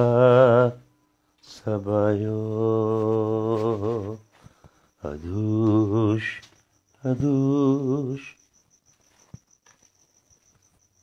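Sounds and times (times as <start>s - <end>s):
insect chirping: 0.0s - 11.0s.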